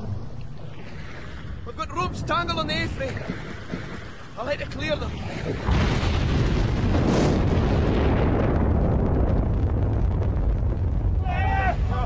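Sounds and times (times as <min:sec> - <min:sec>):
explosion with deep rumble: 0:04.7 - 0:12.0
man shouting: 0:11.2 - 0:12.0.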